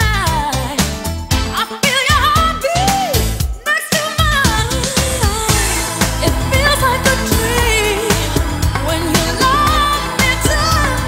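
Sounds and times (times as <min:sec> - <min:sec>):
pop song with singer: 0:00.0 - 0:11.0.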